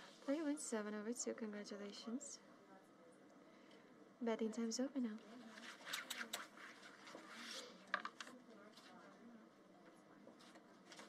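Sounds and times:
cards scraping on felt: 5.5 - 8.1.

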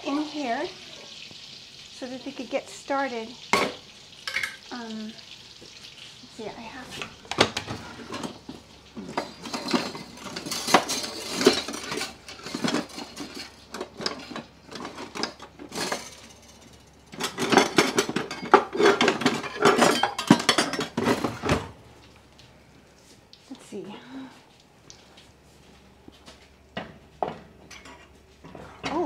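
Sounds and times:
metal utensils and pans clattering: 3.4 - 4.7, 6.9 - 21.7, 27.3 - 29.0.

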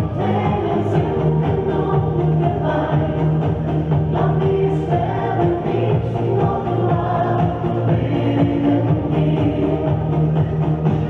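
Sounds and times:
woman singing into microphone: 0.0 - 10.4.

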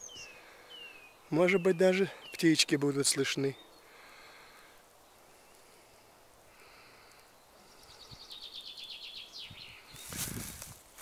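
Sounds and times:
rustling nearby: 9.5 - 11.0.

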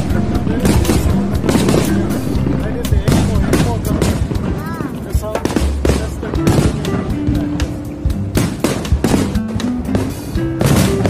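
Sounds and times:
crowd voices: 0.0 - 11.0
fireworks bursting: 0.0 - 11.0
music: 0.0 - 11.0.

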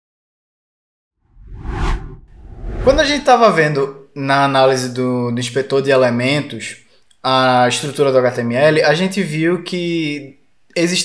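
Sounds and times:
low rumble: 1.4 - 3.2
whoosh transition effect: 1.4 - 3.2.

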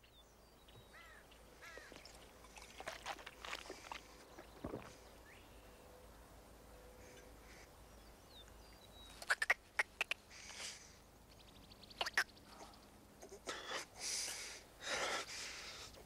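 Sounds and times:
man gulping a drink: 1.9 - 4.9.

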